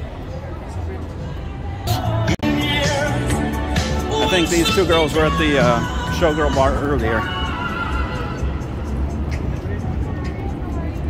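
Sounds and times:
low rumble of traffic: 0.0s - 11.0s
music playing: 0.0s - 11.0s
people's voices: 0.0s - 11.0s.

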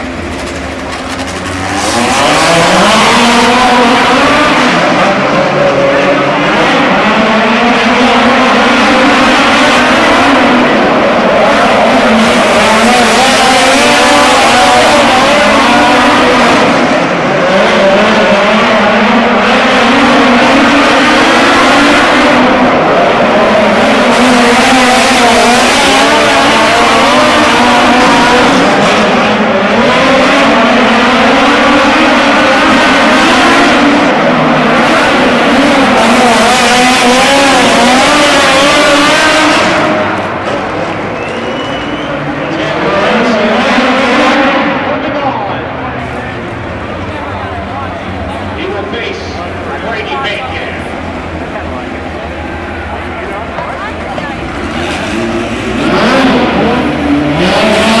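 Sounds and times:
race car engines at full throttle: 0.0s - 58.0s.

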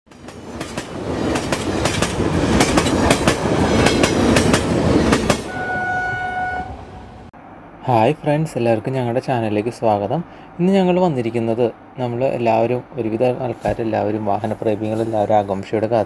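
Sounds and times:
steady horn blast: 5.4s - 7.3s.

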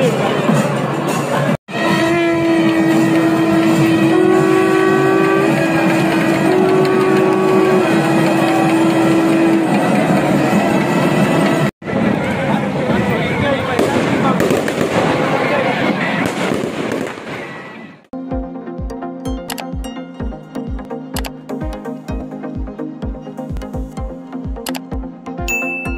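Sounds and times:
loud crowd din: 0.0s - 2.0s, 6.9s - 18.1s.

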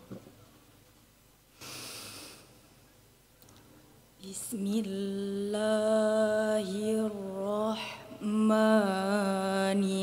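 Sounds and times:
person inhaling close to microphone: 1.5s - 2.6s.

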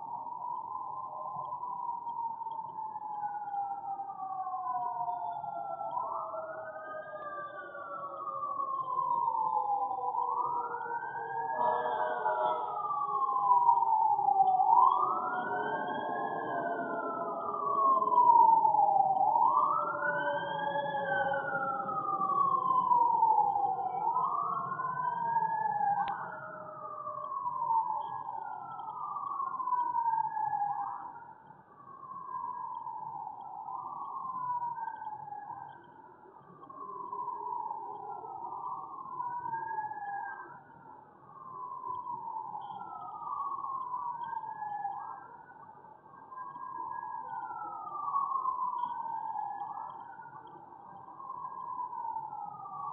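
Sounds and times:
siren wailing: 2.4s - 31.4s, 32.0s - 35.9s, 36.5s - 40.8s, 41.4s - 52.9s.

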